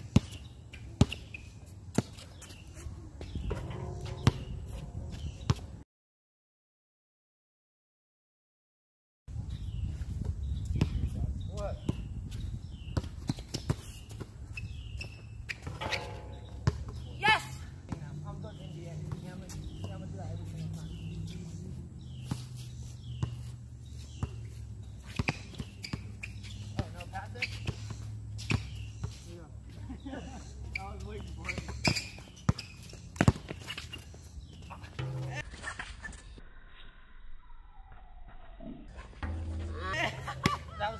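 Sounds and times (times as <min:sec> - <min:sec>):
basketball bouncing: 0:03.2 - 0:05.6, 0:15.5 - 0:17.2, 0:31.5 - 0:33.7, 0:34.9 - 0:35.4.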